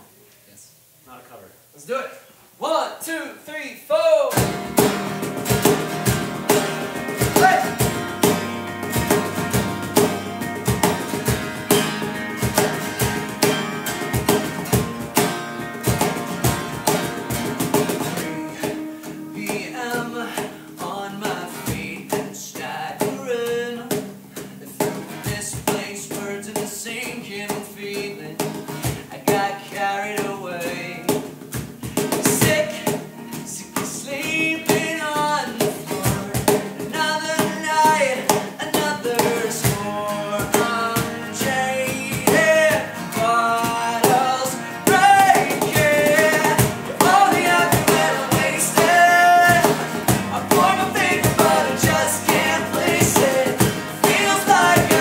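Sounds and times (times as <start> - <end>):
acoustic band playing: 4.3 - 55.0
cajon beat: 4.3 - 55.0
man singing: 6.5 - 7.8, 18.4 - 31.3, 32.0 - 55.0.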